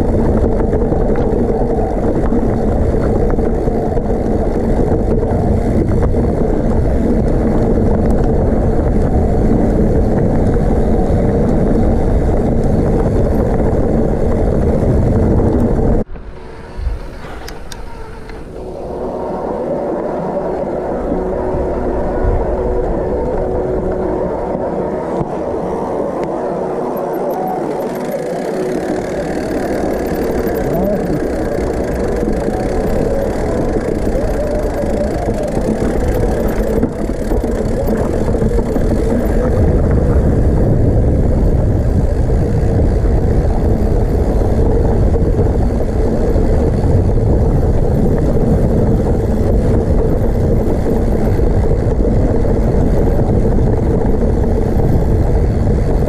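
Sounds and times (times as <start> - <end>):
bike rattling on stony trail: 0.0 - 56.0
wind on microphone: 0.0 - 56.0.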